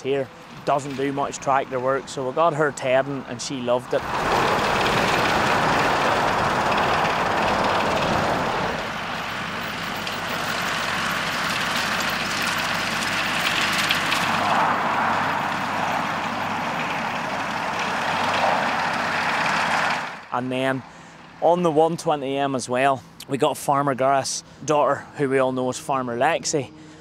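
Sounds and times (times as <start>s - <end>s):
tractor running with tedder: 0.4s - 20.3s.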